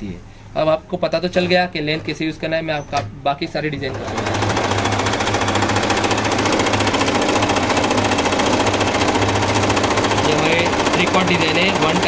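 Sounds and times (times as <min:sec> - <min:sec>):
electric sewing machine running: 0:03.8 - 0:12.0.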